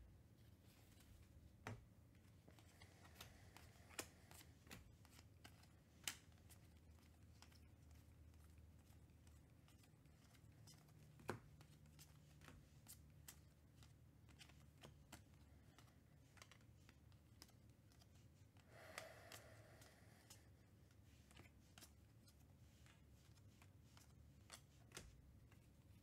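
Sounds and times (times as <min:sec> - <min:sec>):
cards snapping and clicking: 0:02.6 - 0:07.7.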